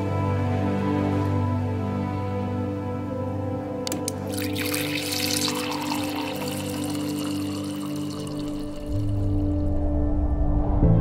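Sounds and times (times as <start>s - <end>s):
background music with held tones: 0.0s - 11.0s
liquid pouring into a ceramic mug: 4.1s - 9.4s.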